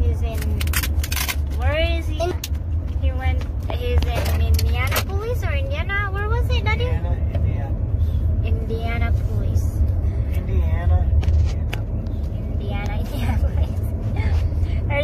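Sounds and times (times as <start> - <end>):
car engine rumble inside cabin: 0.0 - 15.0.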